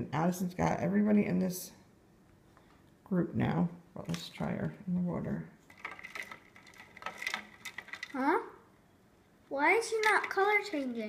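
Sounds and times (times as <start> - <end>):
ice cubes clinking: 5.7 - 8.2, 10.0 - 11.0.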